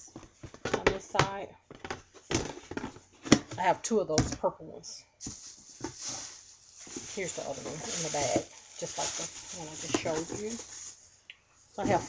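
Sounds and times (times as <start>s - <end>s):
plastic bag rustling: 5.2s - 12.0s.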